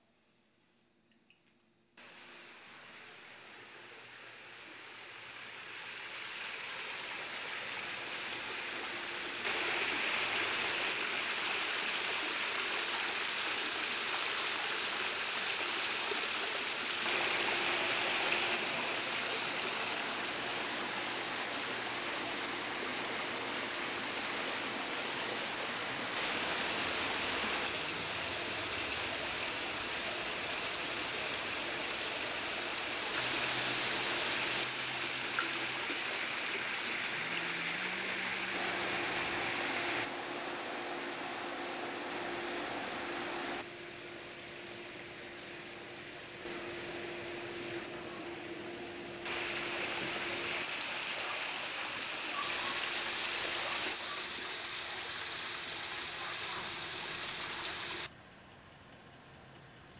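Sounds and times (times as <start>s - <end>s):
waterfall splashing into pool: 4.7s - 40.1s, 49.2s - 58.1s.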